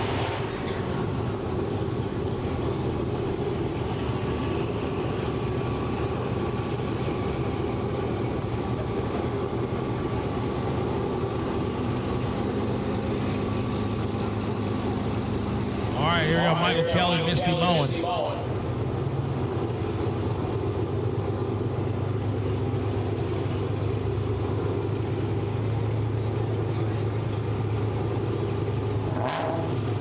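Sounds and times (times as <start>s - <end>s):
car engines idling: 0.0s - 30.0s.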